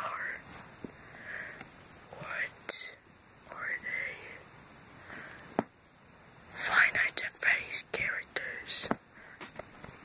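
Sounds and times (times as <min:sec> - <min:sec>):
person whispering: 0:00.0 - 0:00.5, 0:02.1 - 0:04.4, 0:06.5 - 0:09.0.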